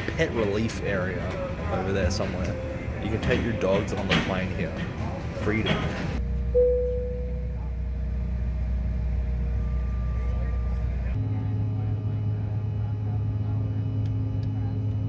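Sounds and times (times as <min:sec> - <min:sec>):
airliner engine drone in cabin: 0:06.0 - 0:15.0
chime-like tone: 0:06.6 - 0:07.5.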